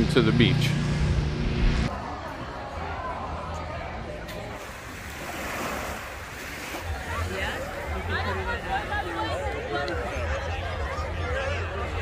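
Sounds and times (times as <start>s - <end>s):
waves washing up a beach: 4.6s - 9.0s.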